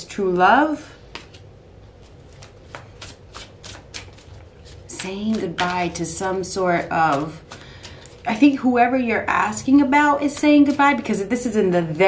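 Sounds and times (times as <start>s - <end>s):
cards being shuffled: 1.0s - 8.6s.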